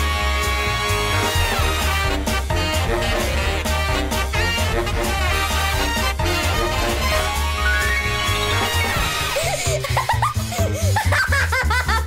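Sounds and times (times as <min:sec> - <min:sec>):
bouncy cartoon music: 0:00.0 - 0:12.0
young girl giggling: 0:09.3 - 0:12.0.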